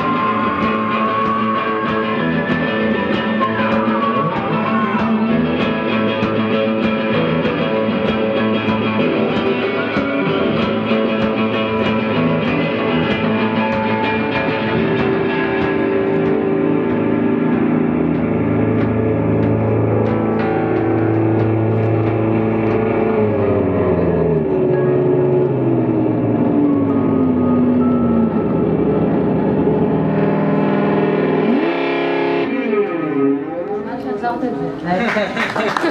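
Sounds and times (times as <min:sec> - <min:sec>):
woman singing: 0:00.0 - 0:05.5
distorted electric guitar: 0:00.0 - 0:34.8.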